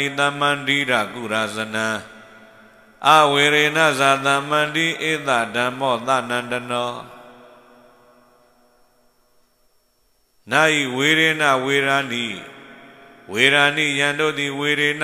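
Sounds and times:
person chanting through a microphone: 0.0s - 2.4s, 3.0s - 7.5s, 10.5s - 15.0s.

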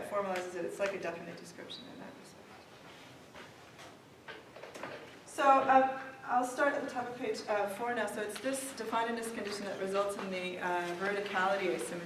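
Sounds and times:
paper rustling: 8.4s - 12.0s.

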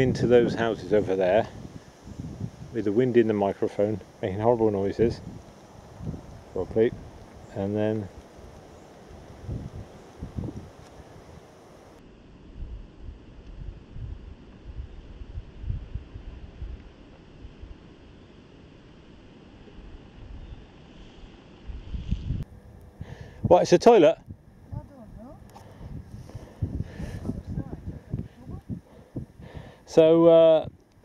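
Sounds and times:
wind buffeting microphone: 0.0s - 17.8s, 21.6s - 30.8s.

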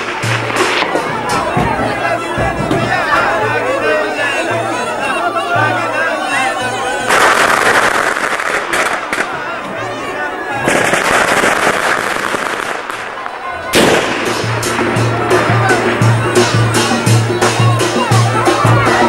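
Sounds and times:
double-reed pipe melody: 0.0s - 10.7s, 13.4s - 19.0s
drum beats: 0.0s - 19.0s
burst of loud cracks: 10.6s - 14.5s.

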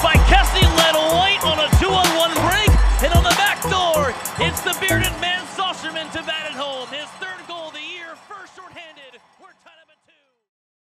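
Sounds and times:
announcer calling a goal: 0.0s - 10.2s.

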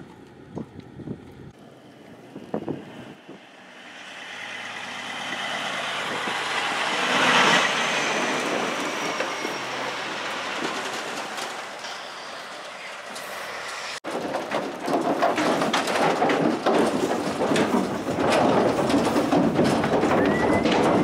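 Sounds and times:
tyres on gravel road: 0.0s - 21.0s
truck engine passing: 1.6s - 14.0s.

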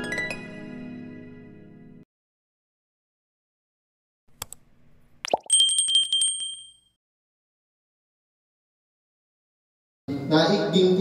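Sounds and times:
mouse clicks: 4.4s - 4.6s
bright bell ding: 5.5s - 6.9s.

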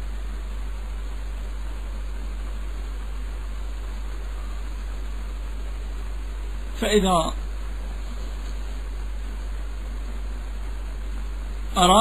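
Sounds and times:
constant low hum: 0.0s - 12.0s.

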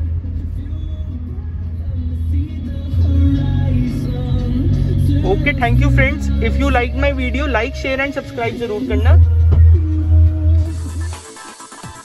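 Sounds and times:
electronic music with heavy bass: 0.0s - 12.0s.

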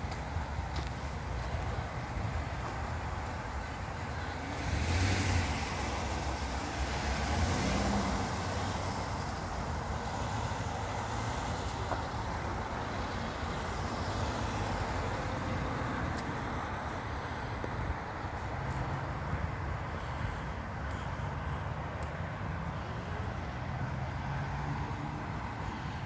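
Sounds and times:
cars driving by: 0.0s - 26.0s.

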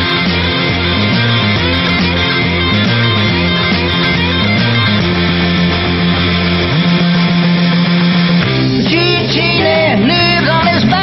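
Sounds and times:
electric guitar: 0.0s - 11.0s
rock band instrumental: 0.0s - 11.0s.

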